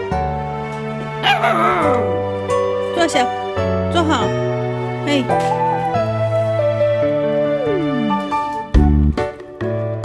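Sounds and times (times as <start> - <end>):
background music: 0.0 - 10.0
puppy crying: 1.2 - 2.2.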